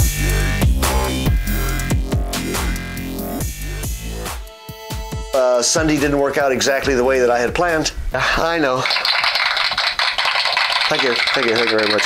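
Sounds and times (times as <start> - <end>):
dense clapping applause: 8.8 - 12.0.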